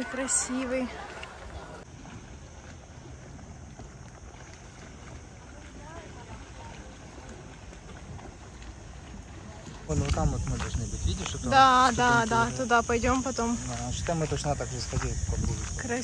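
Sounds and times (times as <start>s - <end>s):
wind noise on microphone: 9.7s - 16.0s.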